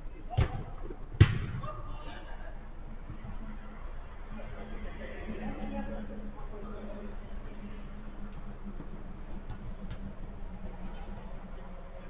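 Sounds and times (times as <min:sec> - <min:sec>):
faint players' voices: 0:00.0 - 0:12.0
football kick thuds: 0:00.3 - 0:01.7.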